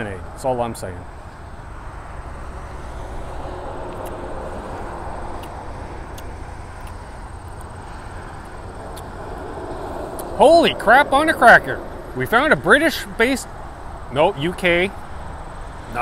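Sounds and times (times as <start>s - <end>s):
wind buffeting microphone: 2.2s - 15.5s.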